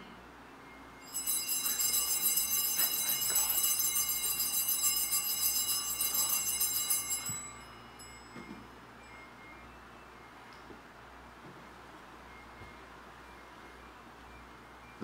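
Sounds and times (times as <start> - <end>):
altar bells jingling: 1.0 - 9.4.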